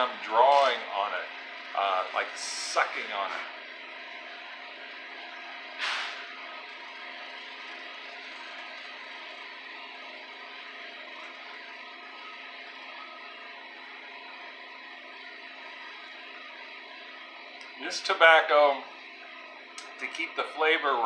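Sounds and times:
faint hum tones: 0:00.0 - 0:21.0.

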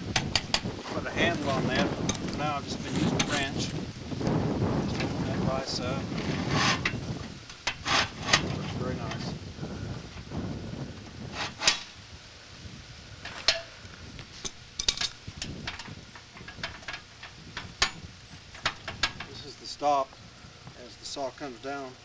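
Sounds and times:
metallic clinks and knocks: 0:14.4 - 0:19.4.

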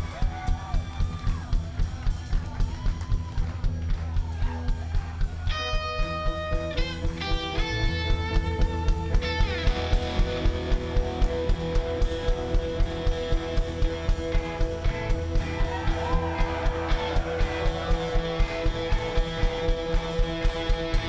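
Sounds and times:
driving drum beat: 0:00.0 - 0:21.0
electric guitars ringing: 0:05.5 - 0:21.0
guitar sliding down in pitch: 0:05.7 - 0:21.0.

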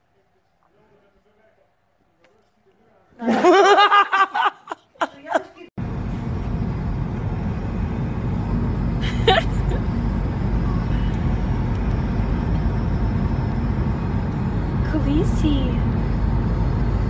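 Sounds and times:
car road and engine rumble: 0:05.7 - 0:17.0.

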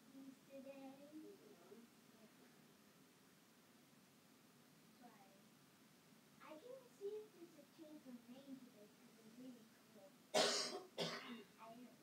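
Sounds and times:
person coughing: 0:10.4 - 0:11.5.

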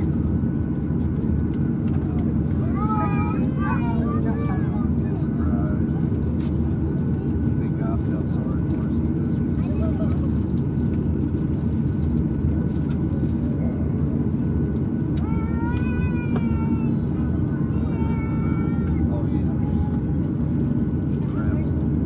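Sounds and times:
faint passenger voices: 0:00.0 - 0:22.0
jet engines idling: 0:00.0 - 0:22.0.

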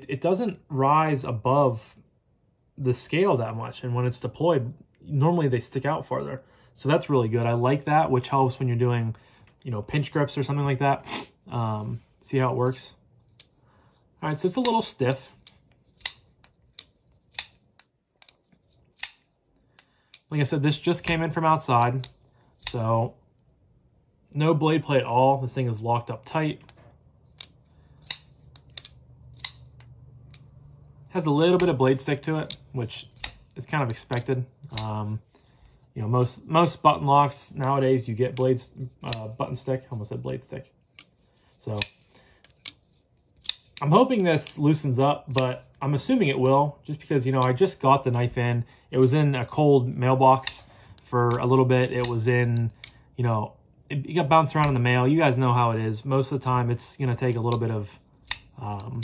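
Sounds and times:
folding knife clicks and snaps: 0:26.6 - 0:30.7.

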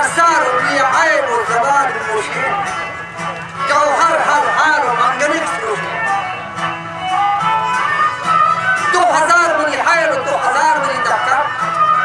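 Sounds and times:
bowed fiddle: 0:00.0 - 0:12.0
plucked strings: 0:00.0 - 0:12.0.

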